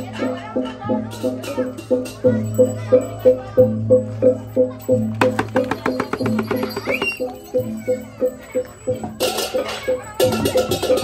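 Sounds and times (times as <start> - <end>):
gamelan playing struck metal notes: 1.2 - 11.0
cymbals clashing: 5.2 - 7.6.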